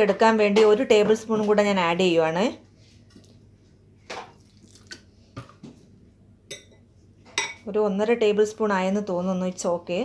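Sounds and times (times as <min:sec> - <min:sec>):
liquid splashing and dripping: 0:04.3 - 0:05.6.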